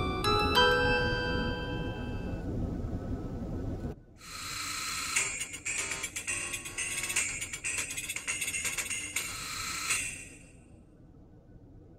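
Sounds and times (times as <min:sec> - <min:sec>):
low rumble: 0:00.0 - 0:04.2.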